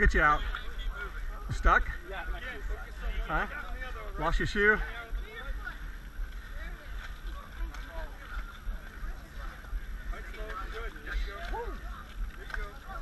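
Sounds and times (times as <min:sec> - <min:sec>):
low rumble: 0:00.0 - 0:13.0
people talking and calling out: 0:00.0 - 0:13.0.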